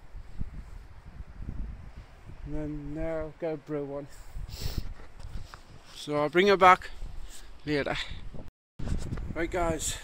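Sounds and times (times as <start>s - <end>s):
wind buffeting microphone: 0.0s - 5.9s, 6.5s - 10.0s.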